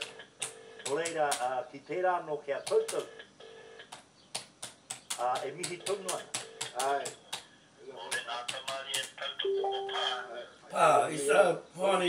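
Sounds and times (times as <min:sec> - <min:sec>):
faint music: 0:07.8 - 0:12.0.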